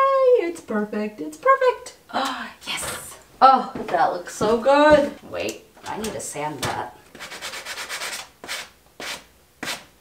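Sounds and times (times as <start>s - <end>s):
sanding block rubbing wood: 7.2s - 9.9s.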